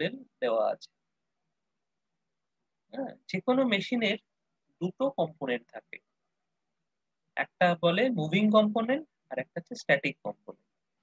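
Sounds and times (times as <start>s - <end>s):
man speaking: 0.0s - 1.0s, 2.9s - 6.1s, 7.4s - 10.6s.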